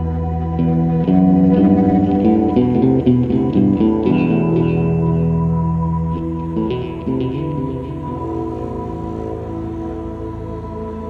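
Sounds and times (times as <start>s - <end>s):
music with low drone: 0.0s - 11.0s.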